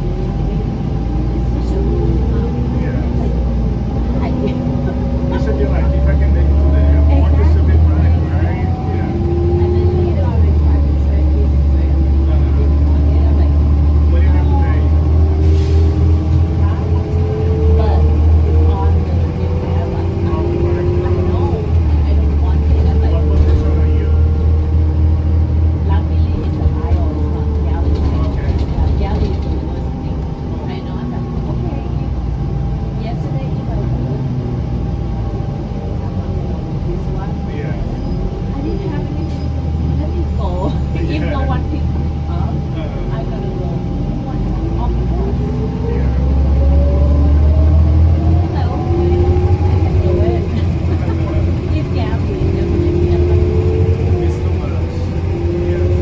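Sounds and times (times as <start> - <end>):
bus engine drone with whine: 0.0 - 56.0.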